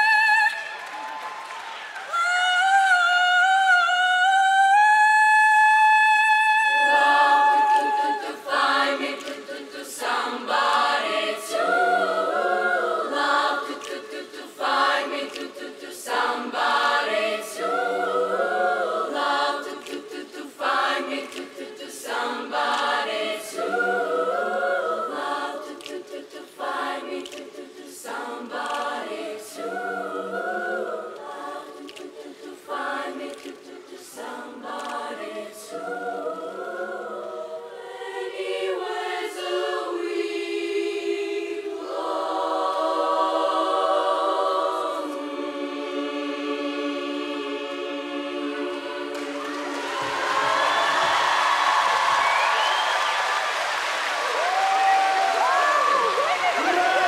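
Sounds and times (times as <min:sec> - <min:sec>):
girls choir singing: 0:02.0 - 0:57.0.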